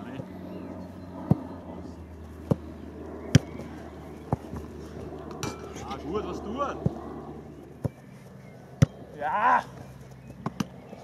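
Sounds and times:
football being kicked: 0:02.4 - 0:02.7, 0:03.3 - 0:04.7, 0:07.8 - 0:08.0, 0:08.8 - 0:09.0.

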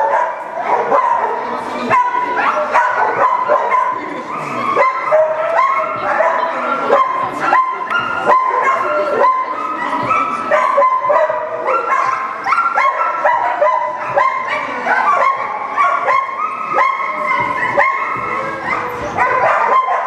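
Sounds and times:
dog barking and yipping: 0:00.0 - 0:20.0.

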